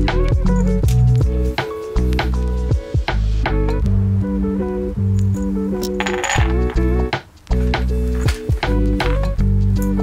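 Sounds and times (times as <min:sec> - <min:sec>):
background music: 0:00.0 - 0:10.0
metal bolts jingling onto panel: 0:05.8 - 0:07.0.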